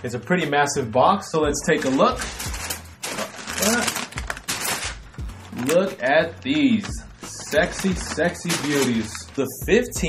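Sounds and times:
tissue paper rustling and crinkling: 0:01.6 - 0:09.6.

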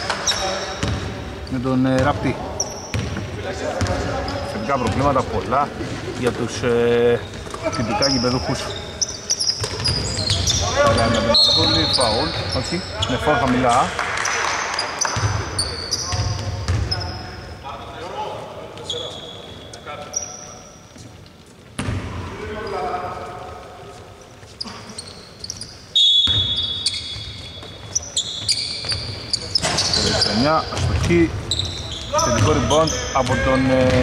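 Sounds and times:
sneakers squealing: 0:00.0 - 0:34.0
basketball bouncing: 0:00.8 - 0:01.1, 0:02.9 - 0:04.1, 0:09.6 - 0:11.2, 0:15.0 - 0:15.5, 0:16.1 - 0:16.9, 0:21.8 - 0:22.1.

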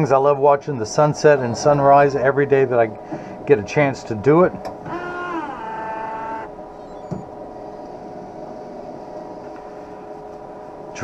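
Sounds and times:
machine hum with fixed tones: 0:00.0 - 0:11.0
motor whine: 0:04.7 - 0:09.7.

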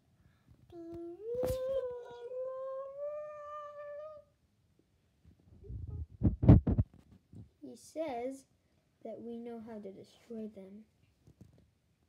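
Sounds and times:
voice humming rising in pitch: 0:00.9 - 0:04.2
loud low thumps: 0:05.6 - 0:06.9.

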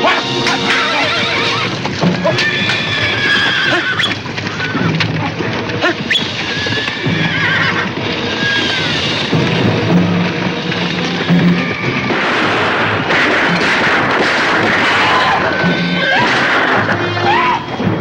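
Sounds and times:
film score music: 0:00.0 - 0:18.0
hooves galloping: 0:00.0 - 0:18.0
horses neighing: 0:00.0 - 0:18.0.

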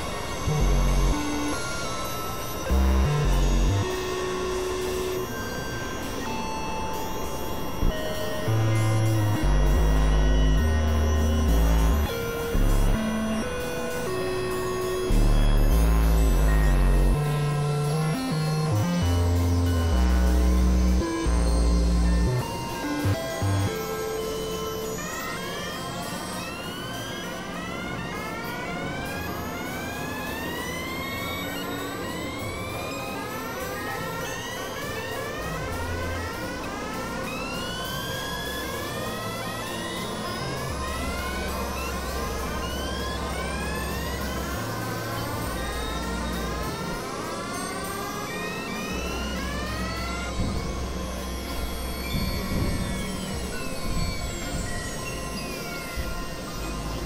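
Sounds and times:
rising synth pitch sweeps: 0:00.0 - 0:57.0
synthesizer drone: 0:00.0 - 0:57.0
low bass notes: 0:07.8 - 0:14.2, 0:15.0 - 0:23.8.

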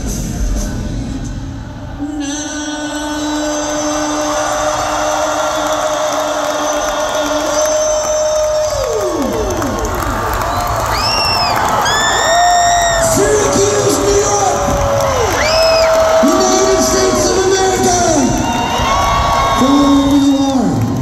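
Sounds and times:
crowd cheering and whooping: 0:03.6 - 0:21.0.

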